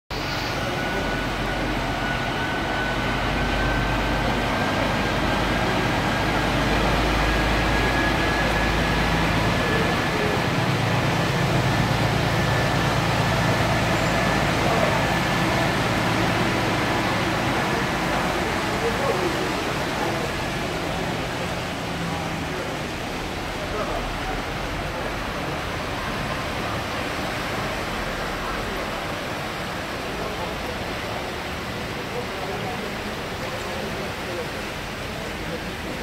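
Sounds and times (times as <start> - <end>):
diesel engine humming: 0.1 - 36.0
water surging and splashing: 0.1 - 36.0.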